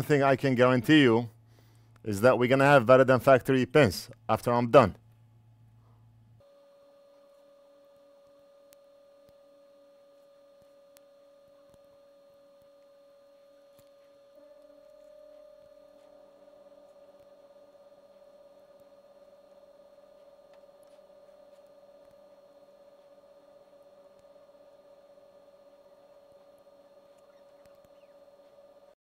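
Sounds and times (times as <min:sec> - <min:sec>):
faint mid-pitched whine: 0:00.0 - 0:29.0.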